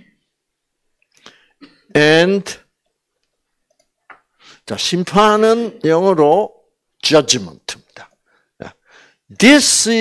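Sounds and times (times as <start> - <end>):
man's voice: 4.7 - 10.0.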